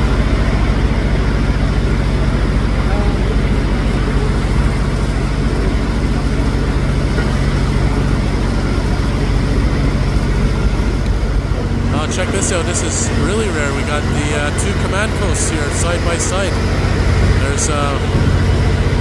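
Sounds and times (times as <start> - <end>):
diesel engines idling: 0.0 - 19.0.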